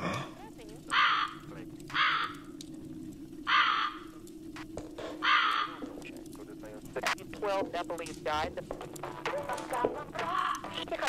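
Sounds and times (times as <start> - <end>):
steady low hum: 0.0 - 11.0
crow cawing: 0.8 - 2.6, 3.4 - 4.2, 5.1 - 5.9.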